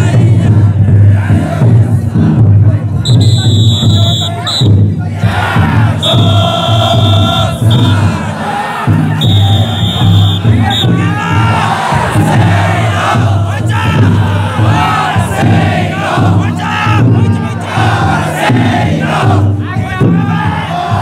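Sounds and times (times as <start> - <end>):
big drum beating: 0.0 - 21.0
crowd shouting together: 0.0 - 21.0.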